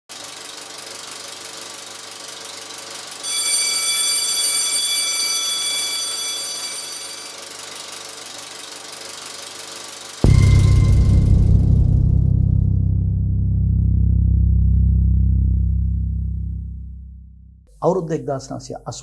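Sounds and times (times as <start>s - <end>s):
film projector clattering: 0.1s - 3.2s, 6.4s - 10.2s
bright ringing tone: 3.2s - 8.5s, 10.2s - 11.8s.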